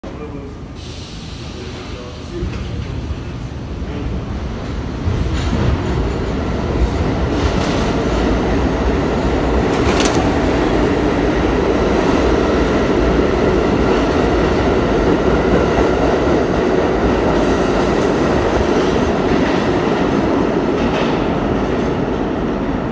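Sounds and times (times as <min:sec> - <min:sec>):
subway train rumbling: 0:00.0 - 0:22.9.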